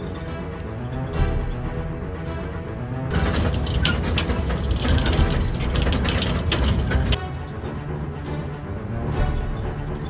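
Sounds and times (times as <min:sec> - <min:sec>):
background music: 0:00.0 - 0:10.0
truck rumbling on rough road: 0:00.0 - 0:10.0
metal frame rattling and clanking: 0:03.0 - 0:07.6.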